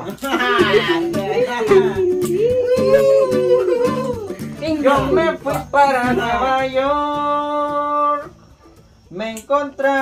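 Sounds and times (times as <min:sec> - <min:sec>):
strummed guitar: 0:00.0 - 0:10.0.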